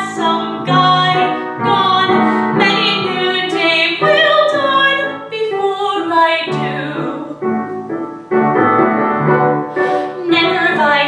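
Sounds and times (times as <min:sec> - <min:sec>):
woman singing with vibrato: 0:00.0 - 0:07.6, 0:10.0 - 0:11.0
instrumental accompaniment: 0:00.0 - 0:11.0.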